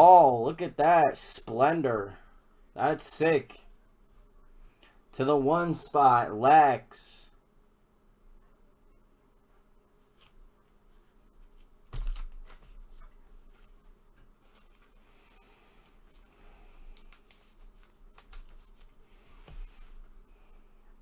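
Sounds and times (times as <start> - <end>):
plastic rustling: 11.5 - 15.4.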